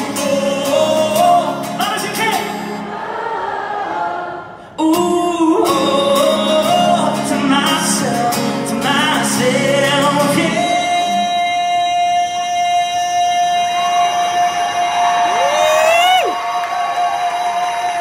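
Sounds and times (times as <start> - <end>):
man singing a long high note: 4.8 - 18.0.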